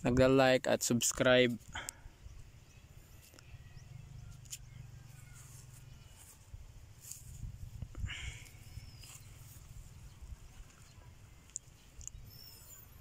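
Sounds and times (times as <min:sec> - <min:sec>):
wind rumble on microphone: 0:06.0 - 0:12.5
high bird chirps: 0:08.4 - 0:13.0.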